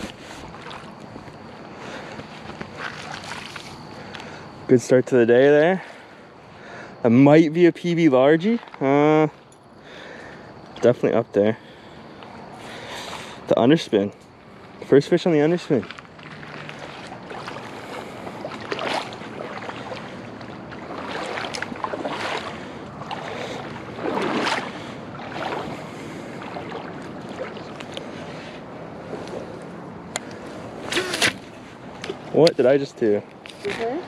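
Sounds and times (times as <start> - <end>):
water lapping at shore: 0.0 - 34.0.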